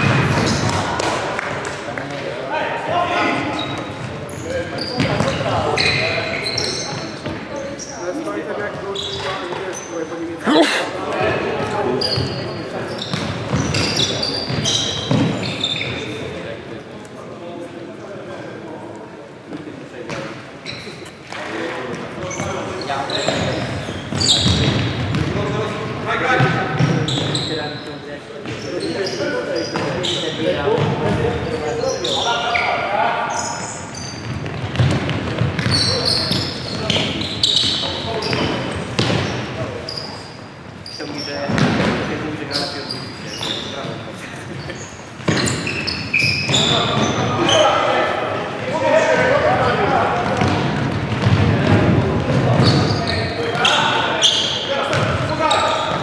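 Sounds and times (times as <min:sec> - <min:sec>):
shoe squeaks: 0:03.2 - 0:10.3, 0:11.9 - 0:16.4, 0:20.1 - 0:21.2, 0:22.2 - 0:25.2, 0:26.8 - 0:34.8, 0:35.6 - 0:41.6, 0:42.4 - 0:48.2, 0:52.5 - 0:56.0.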